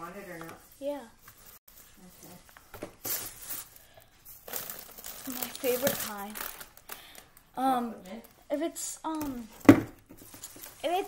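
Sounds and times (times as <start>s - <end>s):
plastic crinkling and rustling: 0.2s - 8.6s, 9.4s - 11.0s.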